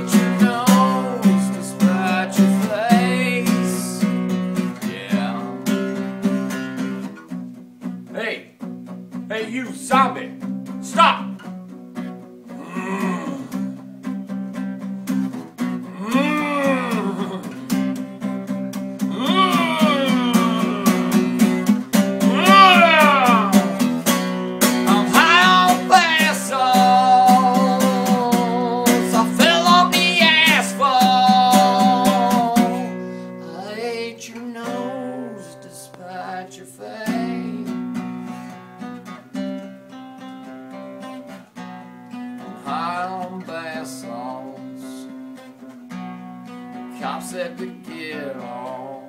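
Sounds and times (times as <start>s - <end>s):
man singing wordless wails: 0.0s - 4.2s, 4.8s - 6.1s, 9.5s - 11.4s, 12.5s - 13.8s, 15.8s - 18.0s, 19.0s - 24.0s, 24.7s - 37.8s, 42.5s - 45.1s, 47.0s - 49.0s
acoustic guitar strumming: 0.0s - 49.0s.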